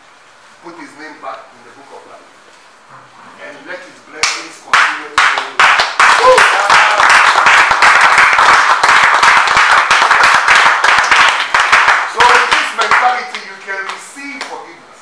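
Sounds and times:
people clapping: 4.2 - 14.7.

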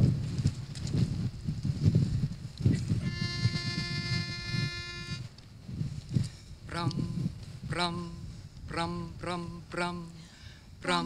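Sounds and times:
pitch pipe note: 3.0 - 5.2.

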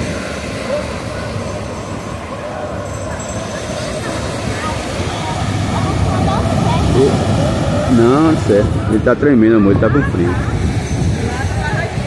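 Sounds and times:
faint chatter of people: 0.0 - 12.0
surf breaking on beach: 0.0 - 12.0.

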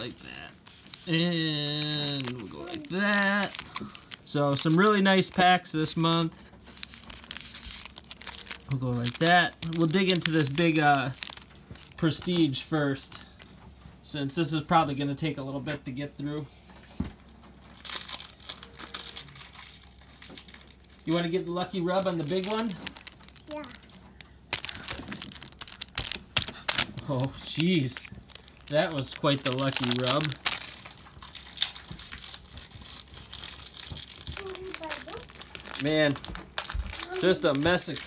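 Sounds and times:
foil wrapper crinkling: 0.0 - 13.6, 17.6 - 38.0.

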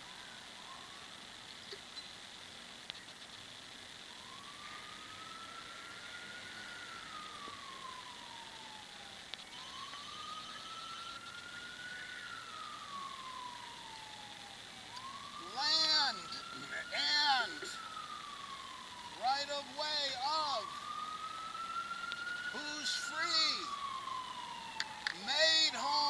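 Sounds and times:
emergency siren wailing: 0.0 - 1.5, 3.9 - 26.0.

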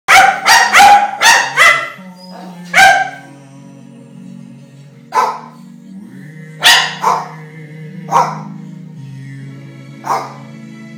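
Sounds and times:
dog barking in yaps: 0.1 - 2.0, 2.7 - 3.3, 5.1 - 5.5, 6.6 - 7.3, 8.1 - 8.5, 10.0 - 10.4.

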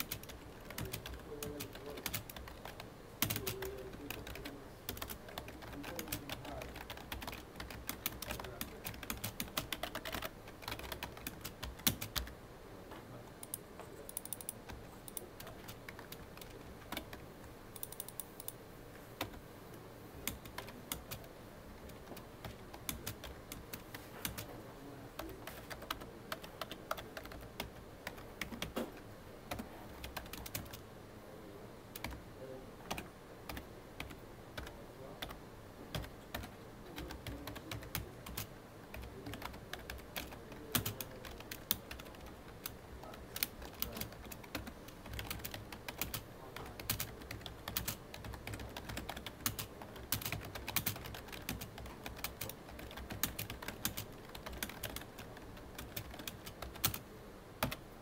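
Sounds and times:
typing on computer keyboard: 0.0 - 12.3, 13.4 - 17.2, 17.8 - 18.6, 20.2 - 24.5, 25.2 - 28.9, 29.5 - 30.8, 32.0 - 32.2, 32.9 - 57.0, 57.6 - 57.8.

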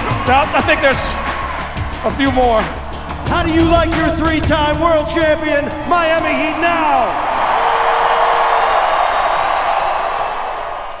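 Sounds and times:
arena crowd cheering: 0.0 - 11.0.

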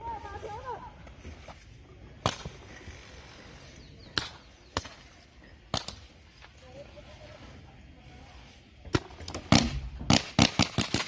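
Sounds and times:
paintball markers firing: 8.9 - 11.0.

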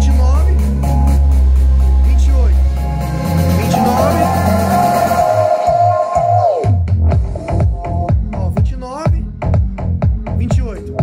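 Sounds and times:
electronic dance beat with bass: 0.0 - 11.0
synth note sliding down: 1.1 - 6.2.

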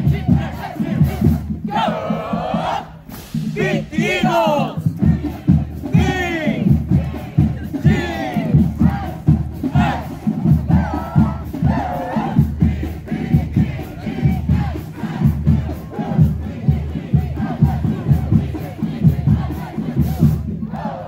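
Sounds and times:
low drum beat: 0.0 - 21.0
people shouting and chanting: 0.0 - 21.0.

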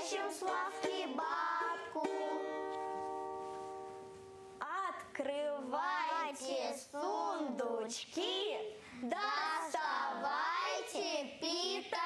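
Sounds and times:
children and woman singing: 0.0 - 2.5, 5.2 - 12.0.

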